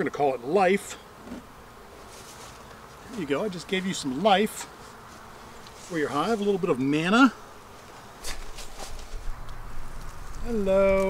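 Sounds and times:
honeybees buzzing: 0:00.0 - 0:11.0
soft rustle: 0:01.2 - 0:06.7, 0:07.7 - 0:11.0.

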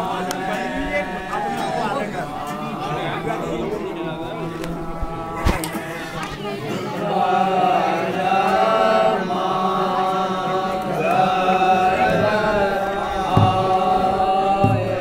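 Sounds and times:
men singing folk song together: 0:00.0 - 0:15.0
low thumps: 0:12.0 - 0:15.0.

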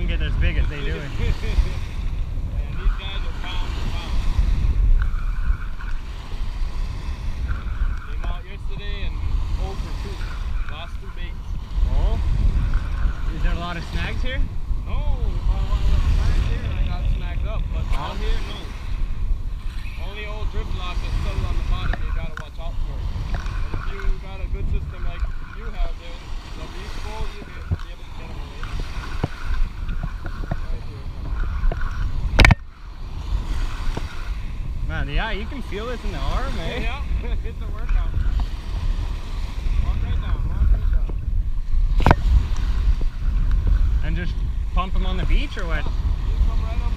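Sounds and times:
small waves washing: 0:00.0 - 0:46.9
wind buffeting microphone: 0:00.0 - 0:46.9.

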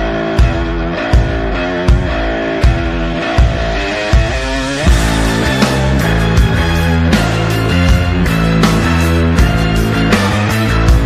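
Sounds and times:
distorted electric guitar riff: 0:00.0 - 0:11.0
drum hits: 0:00.2 - 0:11.0.

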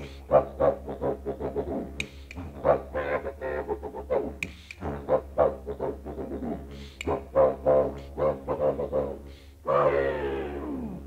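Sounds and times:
didgeridoo drone: 0:00.0 - 0:11.0.

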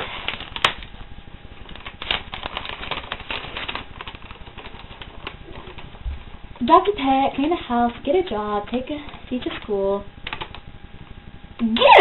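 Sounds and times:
paper rustling and crinkling: 0:00.0 - 0:10.6.

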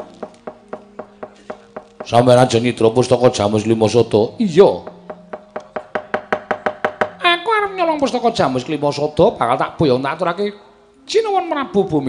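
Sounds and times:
rapid sharp knocking on wood: 0:00.0 - 0:02.2, 0:04.8 - 0:07.2.

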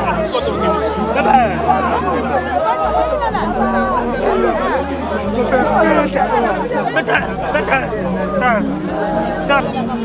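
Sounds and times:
crowd voices talking: 0:00.0 - 0:10.0.

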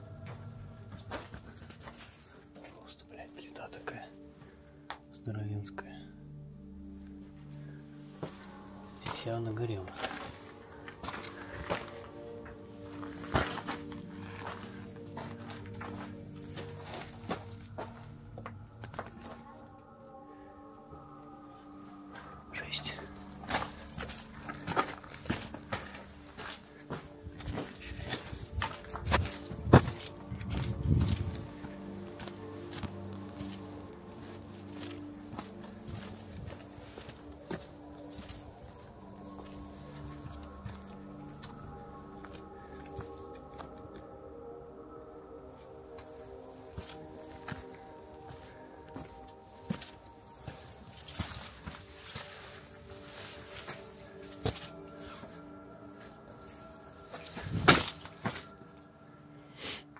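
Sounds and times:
music of sustained tones: 0:00.0 - 0:59.9
footsteps on rubble and gravel: 0:00.1 - 0:03.0, 0:08.2 - 0:19.7, 0:22.1 - 0:43.9, 0:45.9 - 0:58.8.

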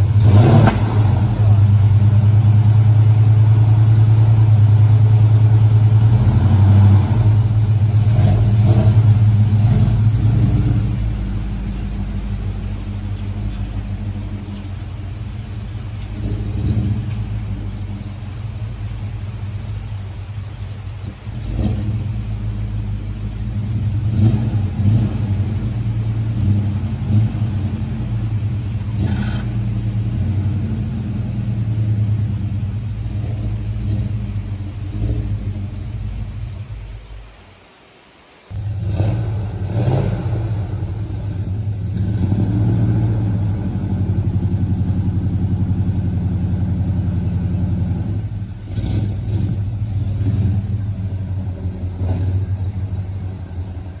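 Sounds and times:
truck engine revving: 0:00.0 - 0:37.4, 0:38.5 - 0:54.0.

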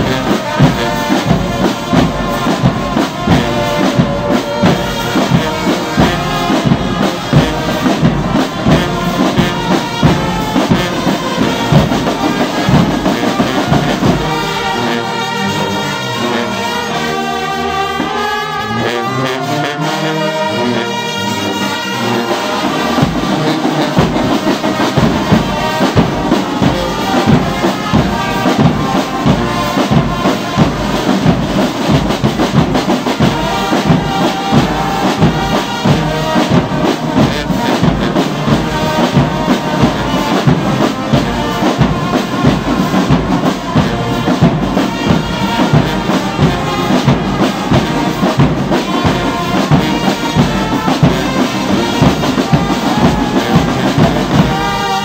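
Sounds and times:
bass drum beat: 0:00.0 - 0:14.4, 0:23.0 - 0:55.0
brass band playing: 0:00.0 - 0:55.0.

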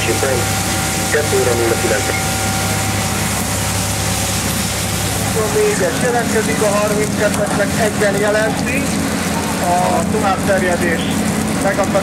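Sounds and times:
heavy engine running: 0:00.0 - 0:12.0.

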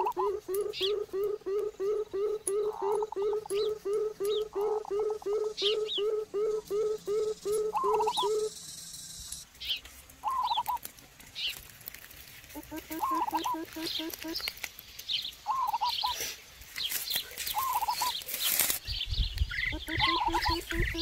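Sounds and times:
bird low hooting: 0:00.0 - 0:09.4, 0:10.2 - 0:10.8, 0:12.5 - 0:14.5, 0:15.5 - 0:16.2, 0:17.5 - 0:18.2, 0:19.6 - 0:21.0
birds high chirps: 0:00.0 - 0:11.6, 0:12.4 - 0:21.0
birds chattering calls: 0:00.0 - 0:11.7, 0:12.4 - 0:21.0.

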